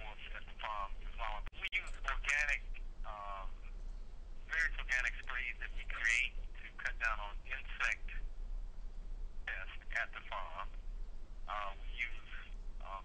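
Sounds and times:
person speaking over telephone: 0.0s - 3.7s, 4.5s - 8.2s, 9.5s - 10.8s, 11.5s - 13.0s
steady low hum: 0.0s - 13.0s.

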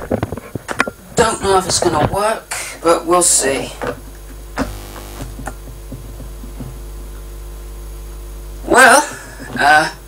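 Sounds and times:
tesla coil mains hum: 0.0s - 10.0s.

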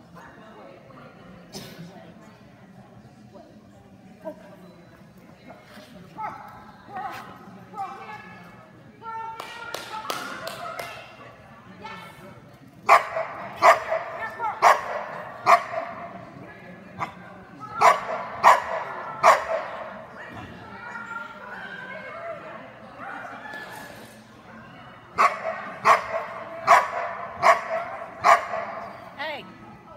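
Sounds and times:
dog barking: 12.9s - 15.9s, 17.8s - 19.7s, 25.2s - 28.8s.

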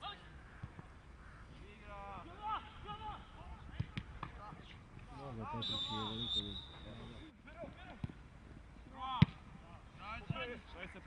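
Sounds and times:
distant players shouting: 0.0s - 8.2s.

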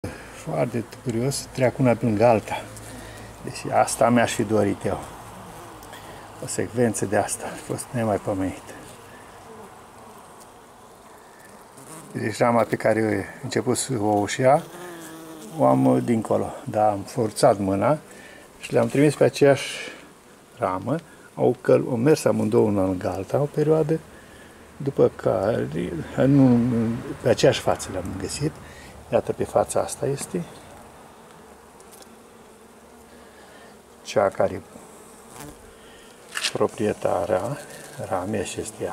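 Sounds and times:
bees humming: 0.0s - 38.9s.

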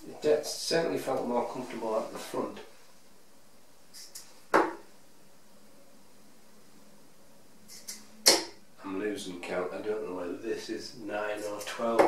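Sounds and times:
dart striking dartboard: 4.5s - 4.8s, 8.2s - 8.6s.

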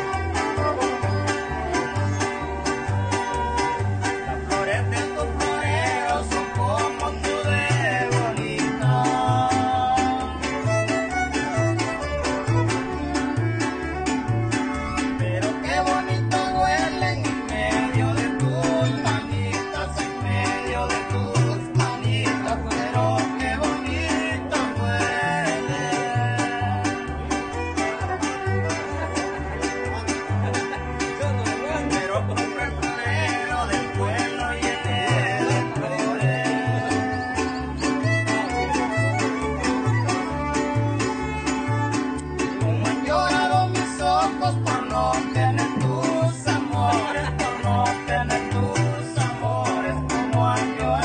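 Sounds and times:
violins playing melody: 0.0s - 4.6s, 10.2s - 15.2s, 26.6s - 32.5s, 35.1s - 43.0s
banjo-like instrument: 0.0s - 51.0s
bass notes: 0.0s - 51.0s
strummed guitars: 0.0s - 51.0s.

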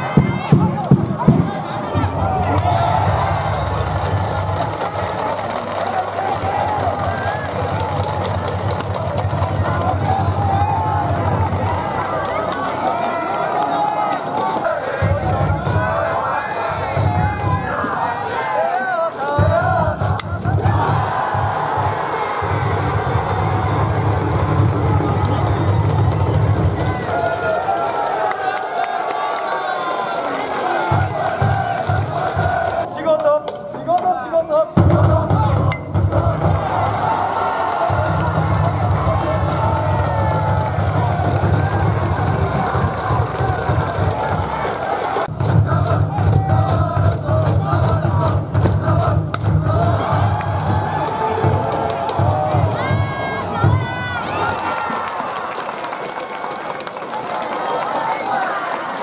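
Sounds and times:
pulsing drum beat: 0.0s - 12.4s, 14.8s - 18.4s, 19.3s - 28.3s, 30.7s - 32.8s, 34.8s - 54.5s
crowd chanting and singing: 0.0s - 59.0s.

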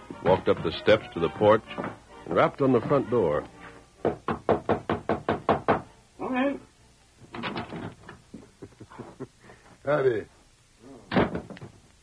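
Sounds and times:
knocking on a door: 4.0s - 5.9s.

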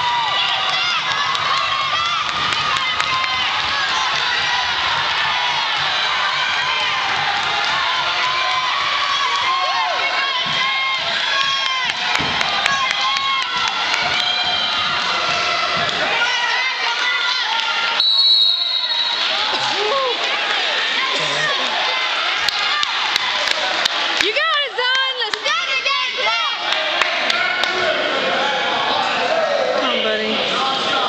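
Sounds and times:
spectators shouting and cheering: 0.0s - 31.0s.

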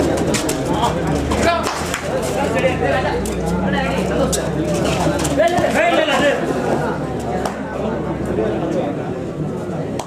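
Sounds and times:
sharp claps: 1.4s - 2.1s, 7.3s - 7.6s.

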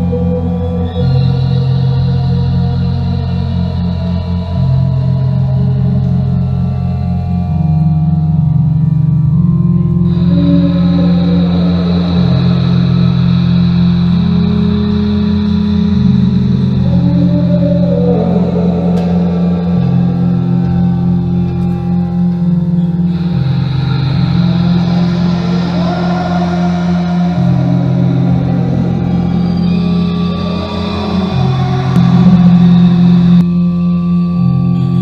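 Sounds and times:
synthesizer drones: 0.0s - 35.0s
high steady tone: 7.5s - 35.0s.

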